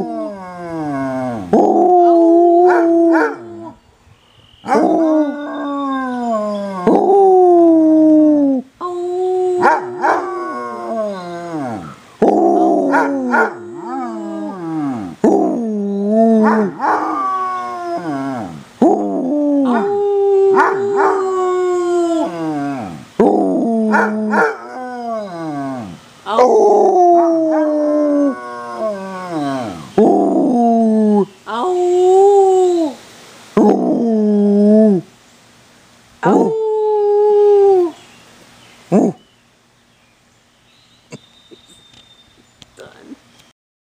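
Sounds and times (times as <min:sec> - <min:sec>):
dog howling: 0:04.7 - 0:33.0.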